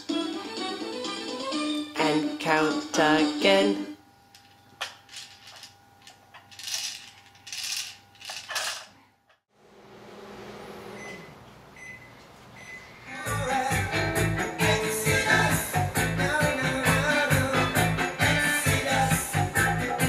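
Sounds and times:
plastic rattles: 6.4s - 8.9s.

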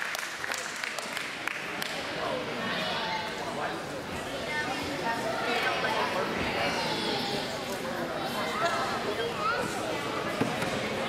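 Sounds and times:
indistinct chatter of voices: 0.3s - 11.0s.

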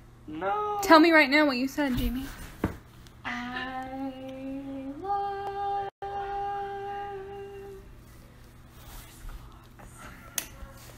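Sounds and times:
woman humming: 3.2s - 7.9s.

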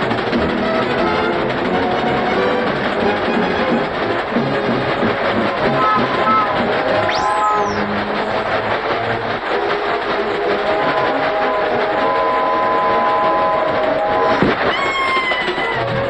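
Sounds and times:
cartoon train running: 0.0s - 16.0s
train whistle: 5.6s - 8.0s, 10.5s - 16.0s.

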